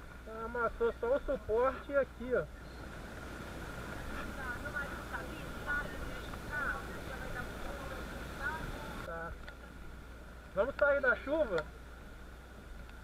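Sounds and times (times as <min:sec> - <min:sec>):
faint voices talking: 0:00.3 - 0:11.7
rain hissing: 0:02.4 - 0:13.0.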